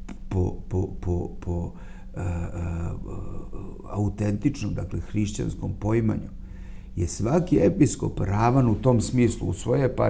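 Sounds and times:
man holding hesitation vowel: 0.0s - 4.9s.

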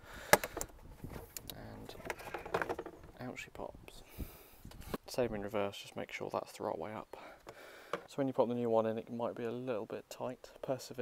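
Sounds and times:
filter handling noise: 0.3s - 3.2s.

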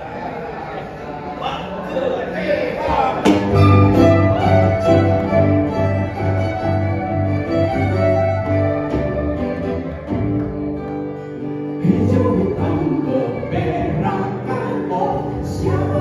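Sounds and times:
bass line: 3.3s - 11.0s
violin melody: 3.5s - 15.1s.

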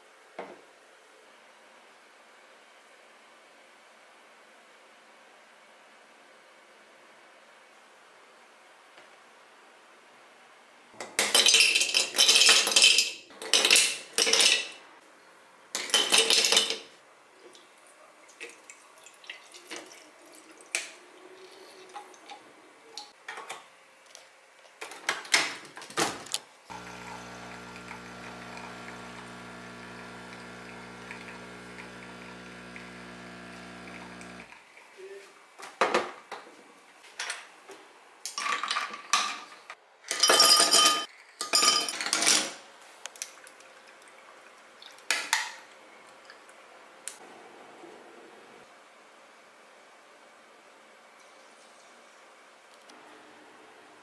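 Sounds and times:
ice cubes clattering into glass: 11.2s - 14.8s
espresso machine pump humming: 26.7s - 34.5s.

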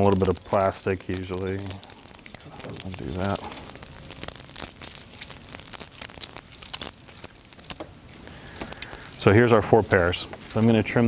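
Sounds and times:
plastic wrap tearing and crinkling: 0.0s - 11.0s.

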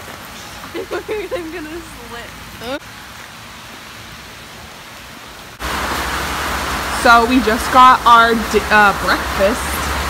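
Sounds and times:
heavy rain falling: 0.0s - 10.0s.

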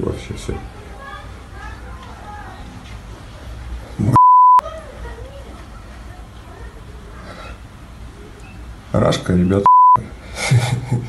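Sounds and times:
censor bleep: 4.2s - 4.6s, 9.6s - 10.0s.

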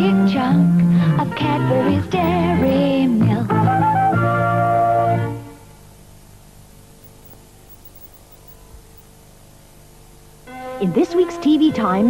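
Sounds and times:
faint mains hum: 0.0s - 12.0s
low steady hiss: 0.0s - 12.0s.

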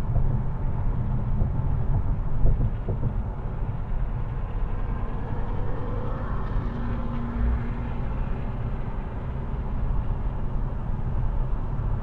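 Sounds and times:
car tyre and wind noise: 0.0s - 12.0s.

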